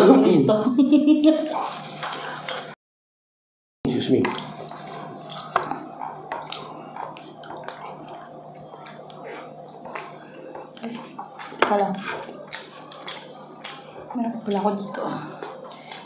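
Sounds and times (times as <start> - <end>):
steady low hum: 3.9 - 16.0
chewing: 4.3 - 16.0.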